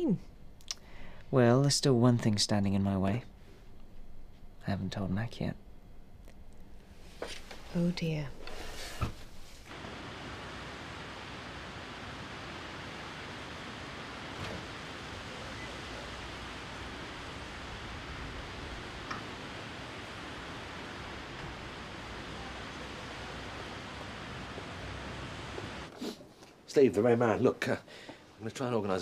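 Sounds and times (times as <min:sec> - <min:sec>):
fountain water splashing: 0:09.7 - 0:25.9.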